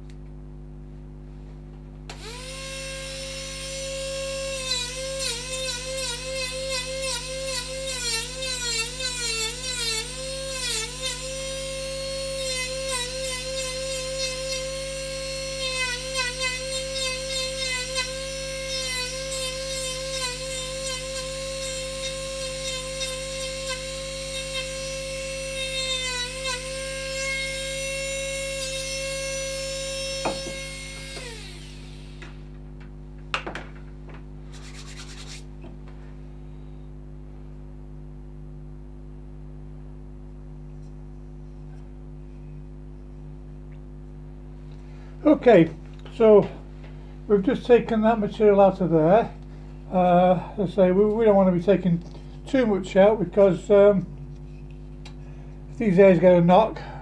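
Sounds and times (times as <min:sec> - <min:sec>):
rotary tool whining on wood: 0:02.1 - 0:32.4.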